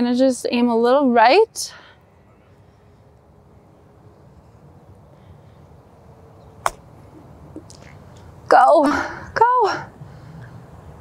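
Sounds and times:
faint outdoor background: 0.0s - 11.0s
golf club striking ball: 6.6s - 6.9s.

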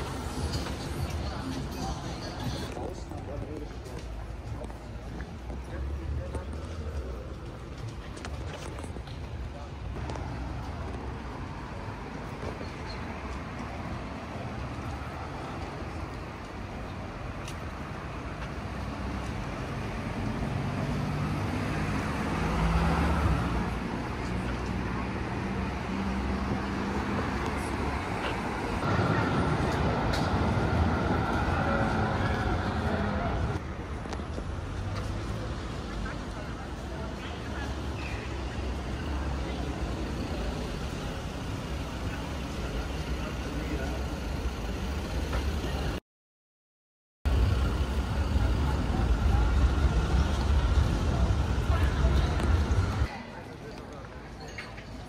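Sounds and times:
city street traffic: 0.0s - 46.0s, 47.2s - 55.0s
passers-by talking: 0.0s - 46.0s, 47.3s - 55.0s.

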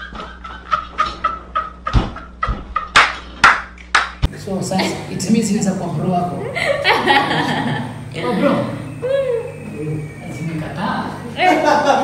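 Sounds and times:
man laughing hard: 0.0s - 3.0s.

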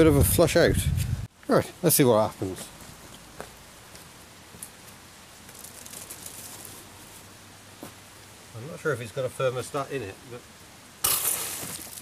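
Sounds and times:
hose nozzle spraying water: 11.0s - 12.0s.

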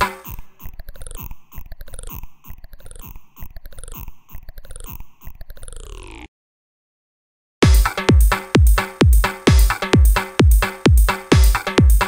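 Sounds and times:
clicking glitch percussion: 0.0s - 6.3s.

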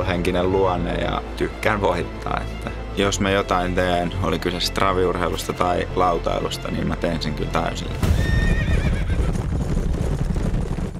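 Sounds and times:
horse whinnying: 8.0s - 9.6s
fast hoofbeats: 8.2s - 10.9s.

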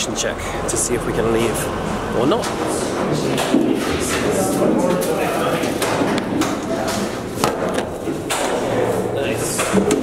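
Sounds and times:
people's voices in a room: 0.0s - 10.0s
sharp knocks: 5.6s - 8.9s.

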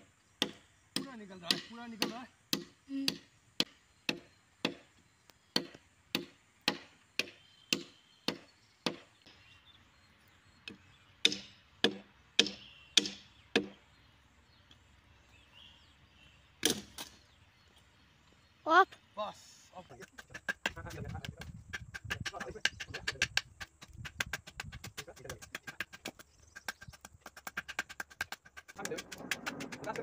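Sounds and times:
blade chopping wooden log: 0.4s - 4.9s, 5.5s - 9.1s, 10.7s - 13.8s, 16.6s - 17.2s, 20.2s - 30.0s.

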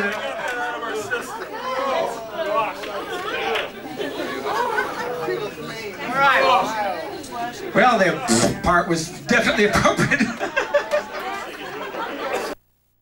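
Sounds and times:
crowd chatter: 0.0s - 12.6s.

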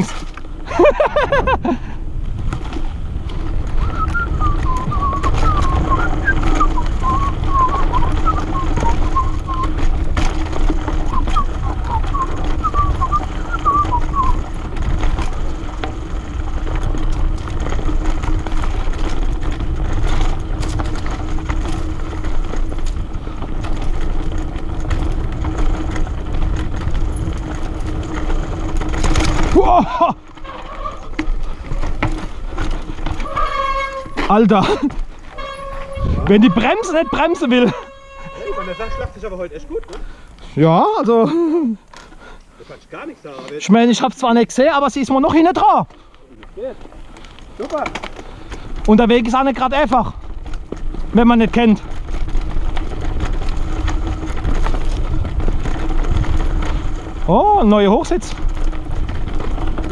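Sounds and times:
bike tyres rumbling on dirt: 0.0s - 59.9s
wind on microphone: 1.1s - 15.7s, 35.6s - 37.2s.

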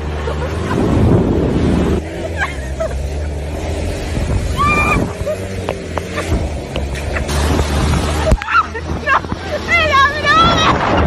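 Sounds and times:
moving car rumble: 0.0s - 11.0s
woman laughing and squealing: 2.1s - 3.5s, 4.4s - 7.3s, 8.1s - 11.0s.

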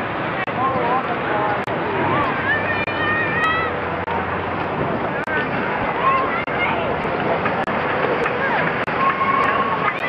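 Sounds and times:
steam locomotive passing: 0.0s - 10.0s.

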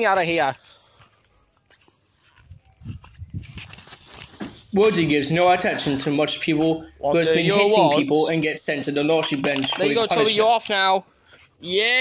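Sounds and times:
footsteps on lawn and gravel: 2.2s - 5.1s.

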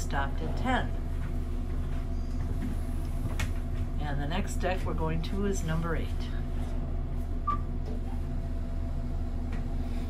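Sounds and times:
elevator machinery hum: 0.0s - 10.0s.

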